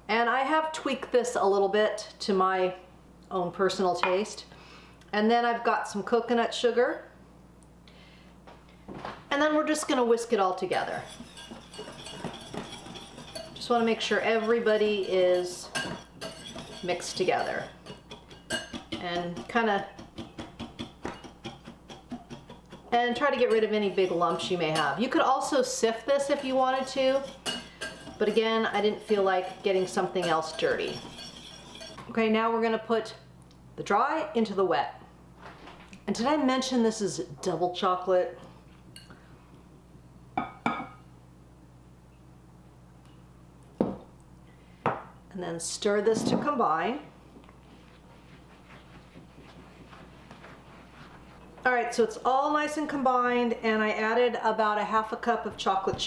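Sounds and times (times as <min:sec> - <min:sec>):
whisk clinking against bowl: 0:10.7 - 0:32.0.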